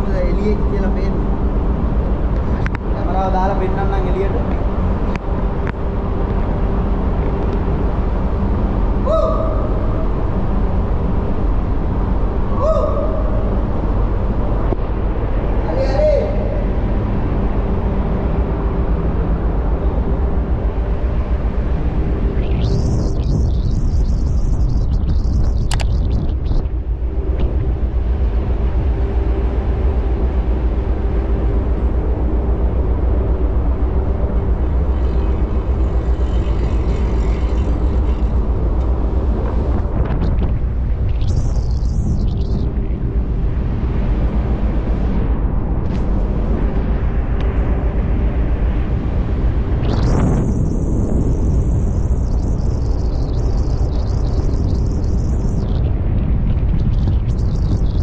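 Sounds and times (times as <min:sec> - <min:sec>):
faint steady hum: 0:00.0 - 0:58.0
wind buffeting camera: 0:21.2 - 0:29.4, 0:34.5 - 0:58.0.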